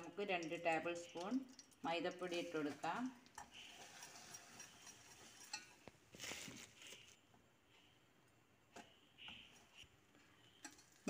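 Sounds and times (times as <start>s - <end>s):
whisk clinking against metal pot: 0.0s - 5.9s.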